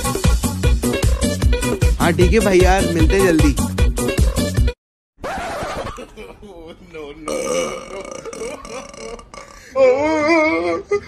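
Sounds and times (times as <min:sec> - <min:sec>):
woman burping: 0:07.3 - 0:09.7.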